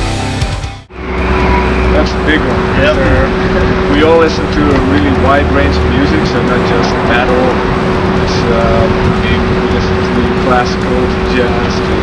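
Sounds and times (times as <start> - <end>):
low rumble: 0.8 - 12.0
constant hum: 0.9 - 12.0
voices: 1.0 - 12.0.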